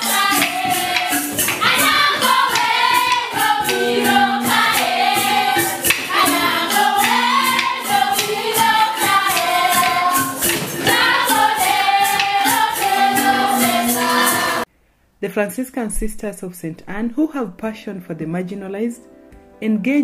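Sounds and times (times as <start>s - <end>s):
group singing in unison: 0.0s - 14.7s
quick percussion beat: 0.0s - 14.7s.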